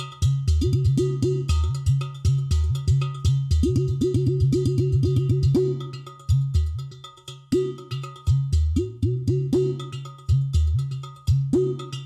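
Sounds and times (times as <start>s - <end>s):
clay pot drum played by hand: 0.0s - 12.0s.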